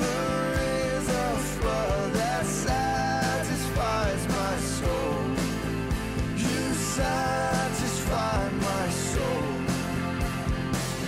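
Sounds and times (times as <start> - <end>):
person singing worship song: 0.0 - 5.6, 6.4 - 10.0
band playing: 0.0 - 11.0
steady drum beat: 0.0 - 11.0.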